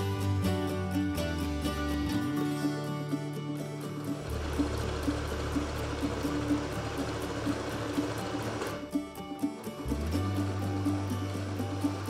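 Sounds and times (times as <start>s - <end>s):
instrumental music with steady beat: 0.0s - 12.0s
sewing machine whirring: 4.0s - 12.0s.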